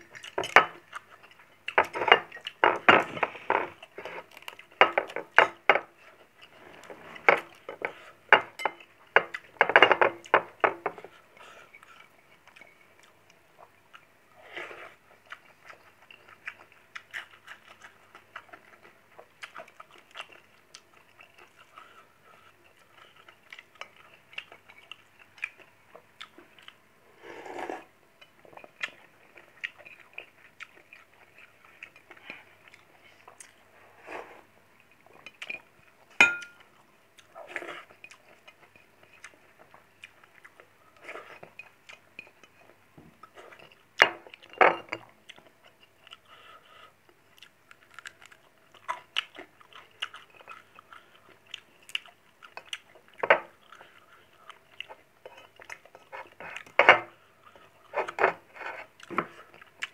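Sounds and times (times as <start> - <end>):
person chewing and smacking: 0.0 - 14.1, 15.0 - 26.8, 28.2 - 33.7, 34.8 - 59.9
dish clink: 36.2 - 36.6.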